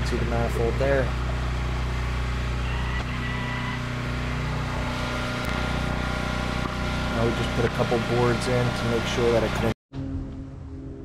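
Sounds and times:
truck engine idling: 0.0s - 9.7s
steady tones: 0.0s - 9.8s.

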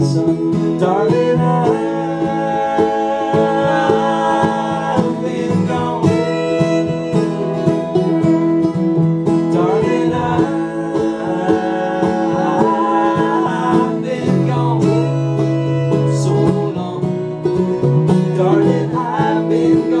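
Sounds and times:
bowed fiddle: 0.0s - 20.0s
picked banjo: 0.0s - 20.0s
strummed acoustic guitar: 0.0s - 20.0s
upright bass: 0.0s - 20.0s.

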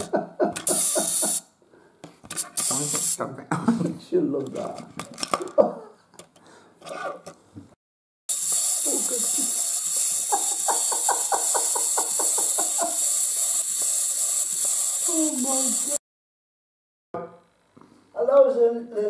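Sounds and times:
steady hiss: 0.6s - 1.4s, 2.3s - 3.2s, 8.3s - 16.0s
toy mechanism clicking: 0.6s - 1.5s, 2.3s - 3.2s, 8.3s - 16.0s.

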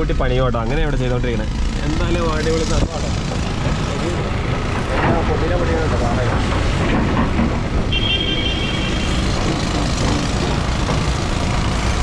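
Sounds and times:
heavy diesel machinery rumble: 0.0s - 12.0s.

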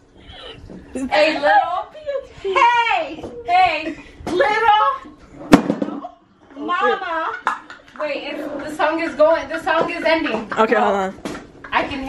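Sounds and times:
woman speaking: 0.9s - 5.0s.

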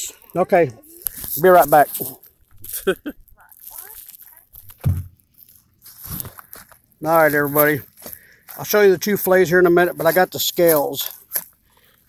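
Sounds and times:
phone handling rustling and bumps: 4.5s - 5.2s.

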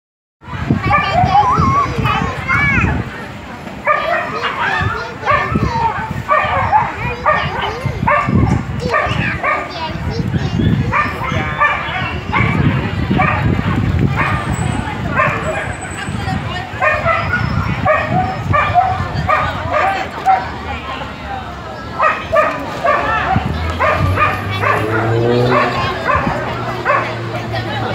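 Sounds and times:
people talking: 0.5s - 27.9s
dog barking: 3.8s - 5.7s, 6.3s - 9.8s, 10.9s - 13.6s, 14.2s - 14.5s, 15.1s - 15.7s, 16.8s - 20.5s, 22.0s - 27.2s.

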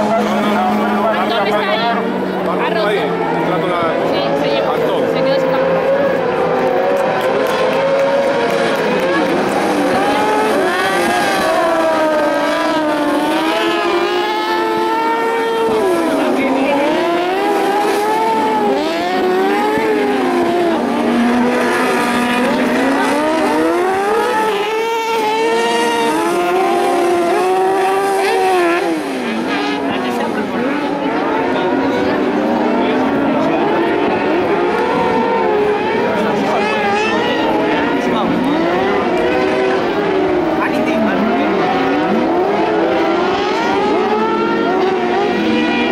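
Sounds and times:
buggy engines revving high: 0.0s - 45.9s.

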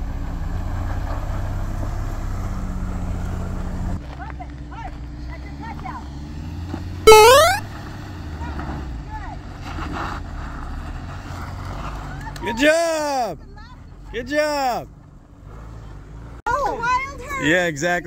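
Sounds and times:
truck engines droning: 0.0s - 18.0s.

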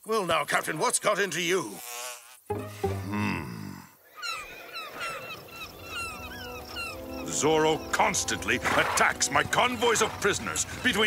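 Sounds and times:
bird chirping: 4.1s - 11.0s
faint background music: 6.0s - 11.0s.

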